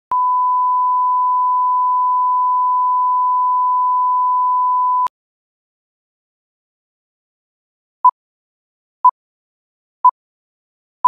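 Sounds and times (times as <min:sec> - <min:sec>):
steady test tone beep: 0:00.1 - 0:05.1.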